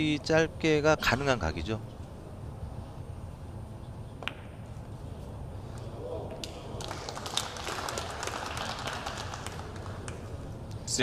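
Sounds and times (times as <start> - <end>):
audience clapping: 6.4 - 10.5.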